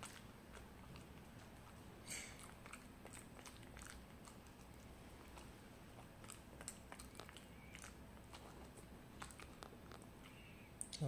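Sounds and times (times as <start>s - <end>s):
puppy chewing: 0.0s - 11.0s.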